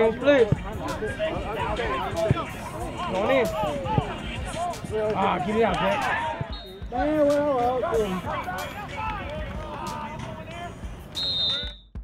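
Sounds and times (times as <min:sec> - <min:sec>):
players calling out: 0:00.0 - 0:11.7
sports whistle blast: 0:06.4 - 0:06.9, 0:11.1 - 0:12.0.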